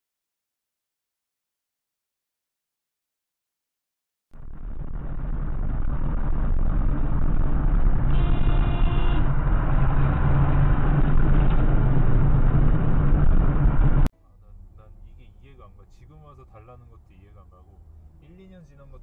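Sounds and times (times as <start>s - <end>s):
car road and engine rumble: 4.4s - 19.0s
car horn: 8.0s - 12.0s.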